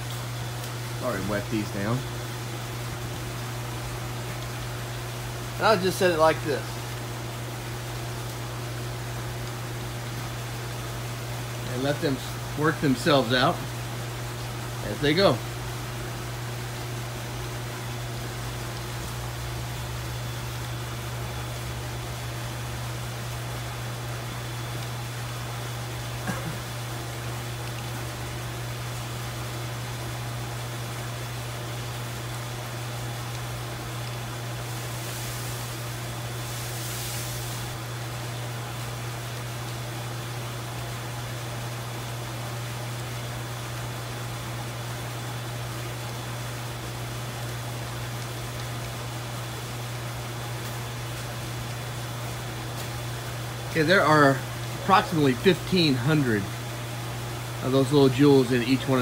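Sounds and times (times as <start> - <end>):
steady low hum: 0.0 - 59.0
background hiss: 34.4 - 37.9
high-pitched hiss: 34.8 - 37.8.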